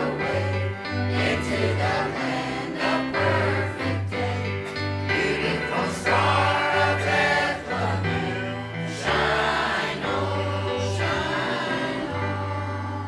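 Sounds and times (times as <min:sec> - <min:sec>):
church choir singing: 0:00.0 - 0:13.0.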